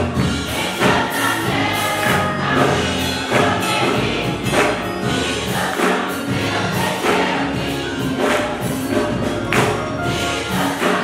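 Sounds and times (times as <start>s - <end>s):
gospel choir singing: 0.0s - 11.0s
instrumental accompaniment with beat: 0.0s - 11.0s.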